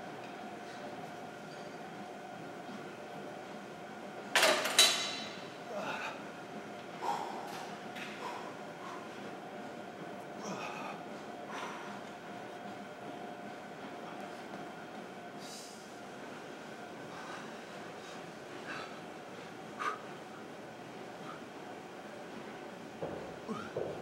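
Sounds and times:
gym hum: 0.0 - 24.0
man breathing hard and grunting: 5.6 - 6.4, 10.4 - 12.0.

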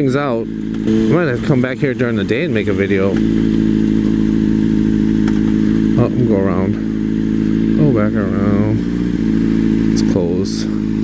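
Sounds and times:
motorcycle engine running steadily: 0.0 - 11.0.

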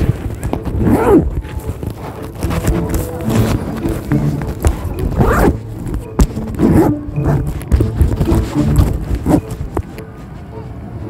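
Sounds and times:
bag zipper opening and closing: 0.0 - 9.8.

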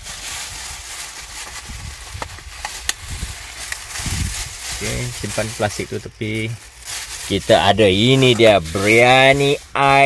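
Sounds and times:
plastic bags rustling: 0.0 - 10.0.

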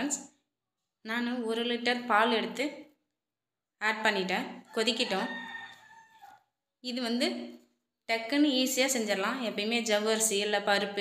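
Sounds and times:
woman speaking: 0.0 - 0.4, 1.0 - 3.0, 3.8 - 5.7, 6.8 - 11.0
rooster crowing: 4.7 - 6.5.

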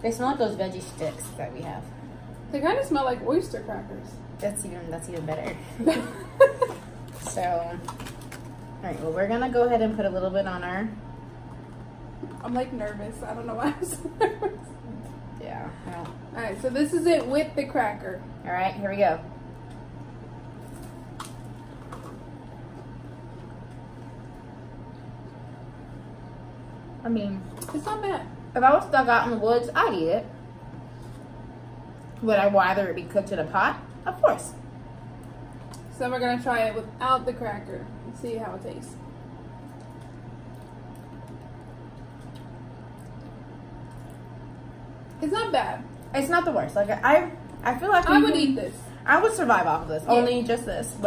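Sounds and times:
steady low hum: 0.0 - 51.0
chewing crackers: 39.6 - 44.4.

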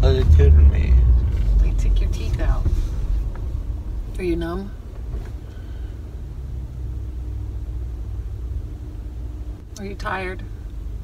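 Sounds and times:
car interior rumble: 0.0 - 11.0
faint steady hum: 0.0 - 11.0.

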